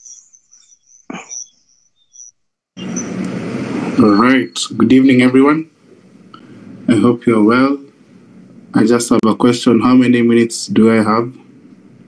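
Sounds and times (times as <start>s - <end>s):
faint high-pitched chirping: 0.0s - 3.2s
microphone hiss and low hum: 2.1s - 12.0s.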